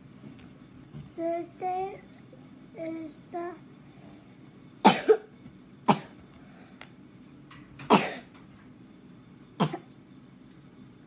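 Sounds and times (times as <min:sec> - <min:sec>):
child coughing: 0:04.8 - 0:05.3, 0:05.9 - 0:06.2, 0:07.9 - 0:08.3, 0:09.6 - 0:09.9.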